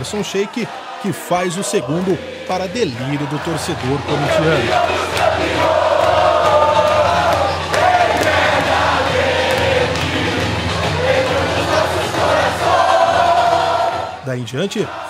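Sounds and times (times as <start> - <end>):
crowd cheering and singing: 0.0 - 15.0.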